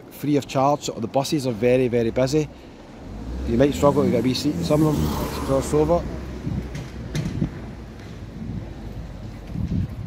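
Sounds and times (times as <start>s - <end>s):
faint street background: 0.0s - 10.0s
wind rumbling on microphone: 5.0s - 10.0s.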